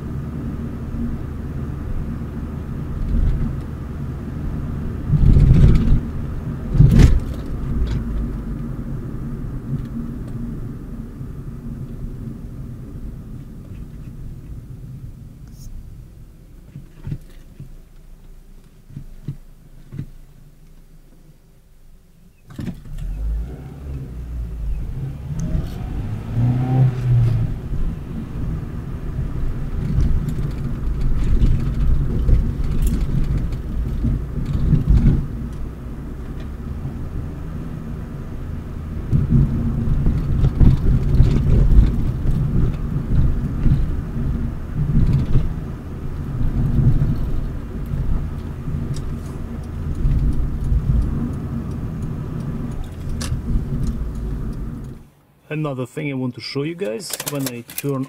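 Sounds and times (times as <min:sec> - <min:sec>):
car engine and road noise: 0:00.0 - 0:58.0.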